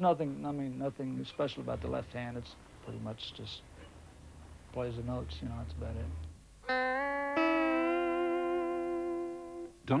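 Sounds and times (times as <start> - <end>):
clean electric guitar notes: 6.6 - 9.8.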